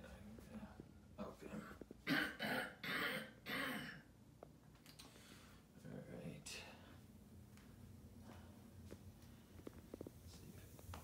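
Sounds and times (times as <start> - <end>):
man coughing and clearing throat: 1.5 - 4.1.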